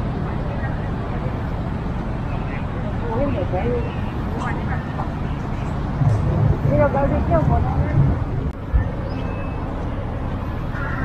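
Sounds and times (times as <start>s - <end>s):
faint voices: 0.0s - 11.0s
low rumble of city traffic: 0.0s - 11.0s.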